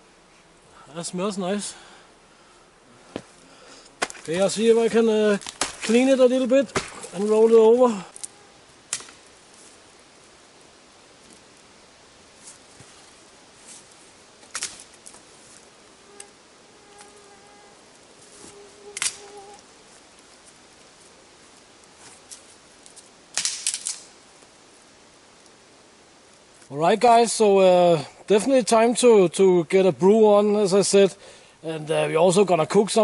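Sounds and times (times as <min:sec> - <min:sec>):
faint buzzing tone: 0:07.0 - 0:22.7.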